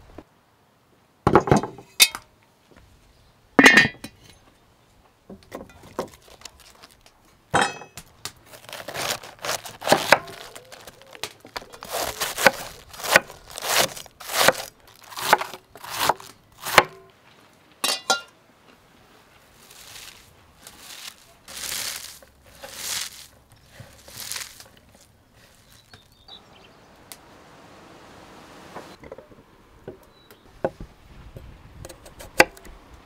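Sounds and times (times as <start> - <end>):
shredded cabbage rustling: 5.8 - 7.1, 8.4 - 16.9, 19.1 - 26.3
knife slicing cabbage on wooden board: 8.5 - 17.0, 19.7 - 25.7.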